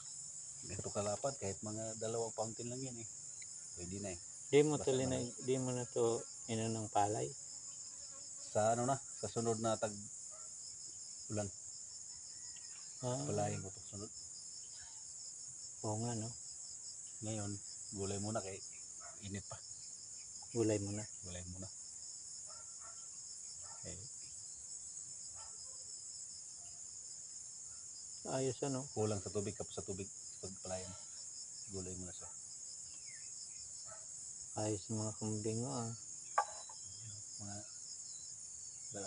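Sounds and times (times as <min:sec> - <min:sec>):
field insects chirring: 0:00.0 - 0:39.0.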